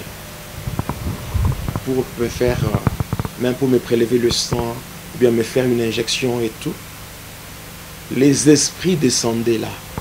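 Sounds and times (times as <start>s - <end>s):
microphone handling thumps: 0.6s - 4.8s.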